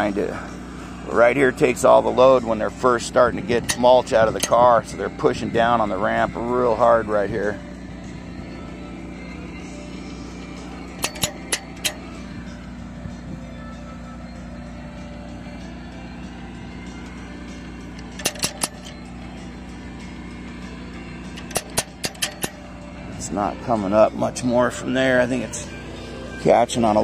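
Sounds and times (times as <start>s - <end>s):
engine hum: 0.0s - 27.0s
chain hoist ratchet clicking: 3.6s - 4.7s, 10.4s - 12.2s, 17.9s - 19.1s, 21.3s - 22.7s.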